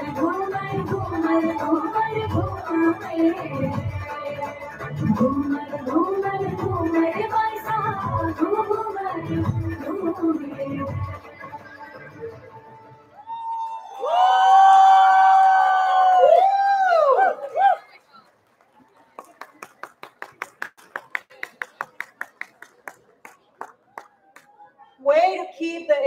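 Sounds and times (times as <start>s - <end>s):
loud high-pitched whoop: 13.1s - 17.8s
audience clapping: 18.2s - 24.6s.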